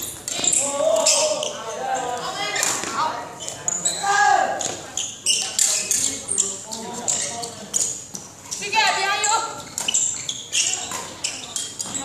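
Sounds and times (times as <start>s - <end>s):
shoes squeaking on court floor: 0.0s - 12.0s.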